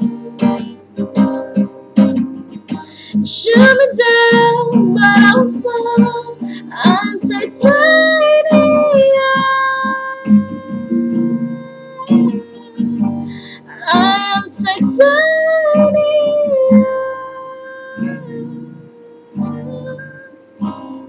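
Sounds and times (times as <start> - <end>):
acoustic guitar strumming: 0.0 - 21.0
woman singing long notes: 3.1 - 20.4.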